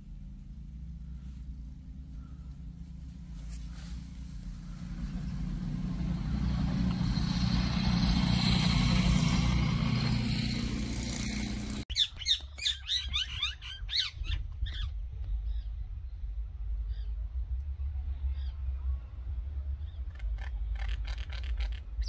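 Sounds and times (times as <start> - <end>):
motor vehicle passing: 0.0 - 11.9.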